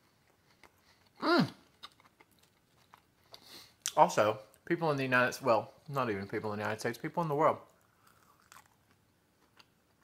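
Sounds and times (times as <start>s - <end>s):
chewing crunchy food: 0.0s - 4.6s, 7.6s - 10.0s.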